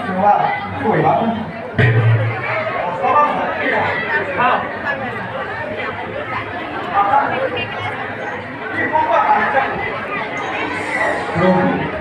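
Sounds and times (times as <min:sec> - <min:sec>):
crowd chatter in a hall: 0:00.0 - 0:12.0.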